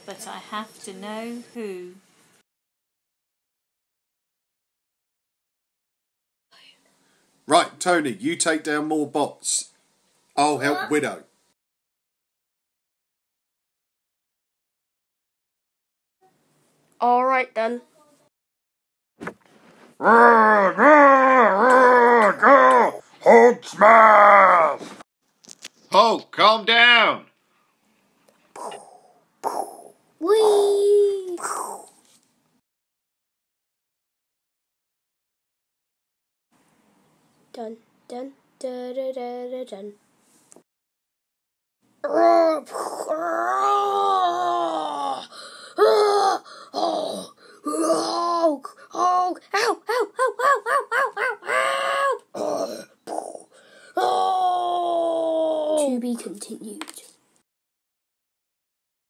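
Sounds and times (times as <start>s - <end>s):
person groaning: 20.0s - 25.0s, 42.0s - 50.2s, 51.4s - 55.8s
person making vocal sound effects: 20.0s - 25.0s, 28.6s - 32.0s, 42.0s - 50.2s, 51.4s - 55.9s.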